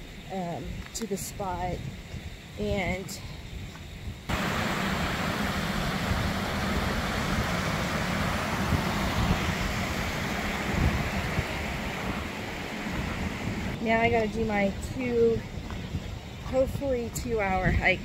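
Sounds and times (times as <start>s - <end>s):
water rushing over rocks: 4.3s - 13.8s.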